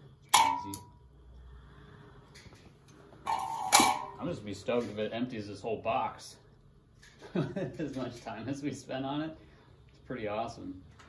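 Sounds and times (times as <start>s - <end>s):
metal clatter: 2.4s - 5.0s.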